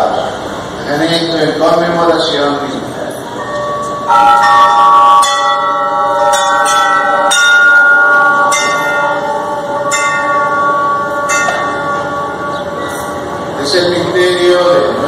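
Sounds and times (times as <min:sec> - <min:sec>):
altar bells ringing: 0:02.6 - 0:15.0.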